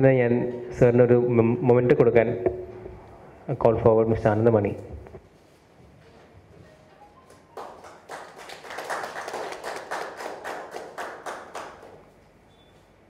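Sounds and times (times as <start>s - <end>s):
audience applauding: 7.3s - 12.1s.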